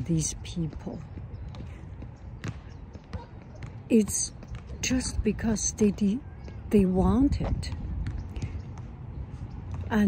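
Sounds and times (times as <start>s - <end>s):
basketball bouncing on pavement: 0.0s - 10.0s.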